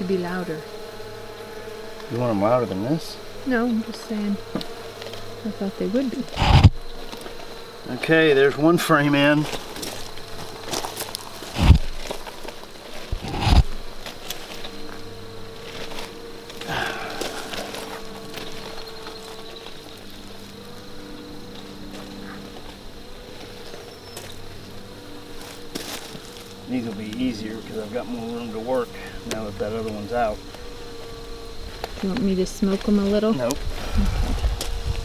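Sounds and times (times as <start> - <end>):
bees buzzing: 0.0 - 35.0.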